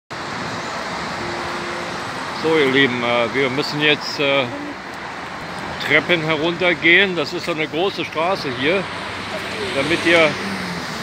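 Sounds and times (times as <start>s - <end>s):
road traffic hum: 0.1s - 11.0s.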